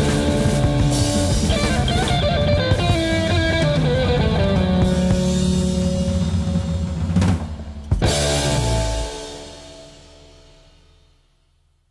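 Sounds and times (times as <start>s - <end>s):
electric guitar chord ringing: 0.0s - 6.6s
drum and cymbal hit: 0.0s - 11.1s.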